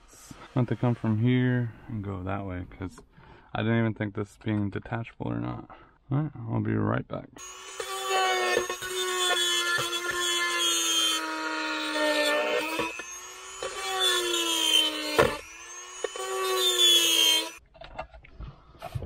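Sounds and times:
rotary tool grinding plastic: 7.4 - 17.6.

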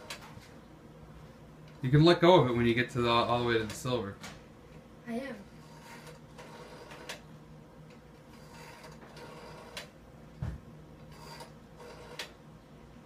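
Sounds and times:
rotary telephone dial spinning: 5.6 - 7.2, 8.3 - 9.9, 11.1 - 12.3.

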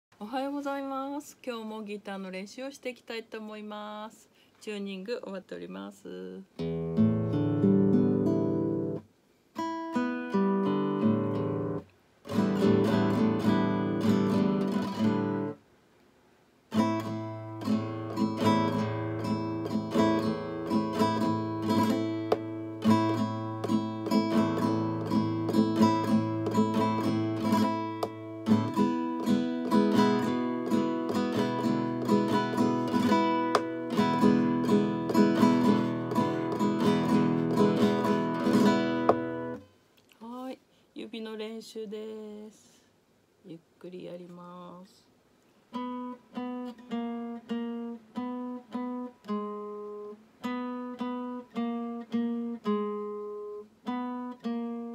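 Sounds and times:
acoustic guitar strumming: 6.6 - 9.0, 9.6 - 15.6, 16.7 - 39.7, 45.7 - 54.9.

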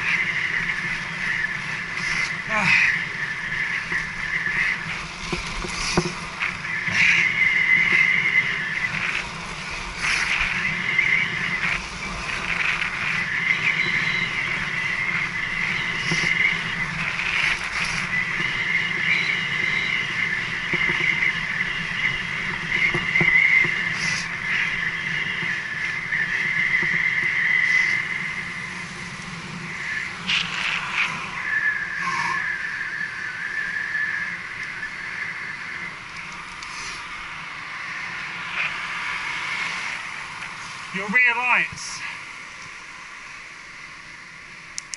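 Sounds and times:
high whine: 0.0 - 44.9
wind and tyre rush on tarmac: 0.0 - 44.9.

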